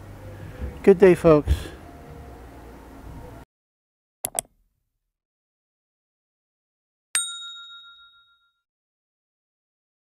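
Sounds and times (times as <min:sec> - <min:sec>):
mouse clicks: 0:04.3 - 0:04.5.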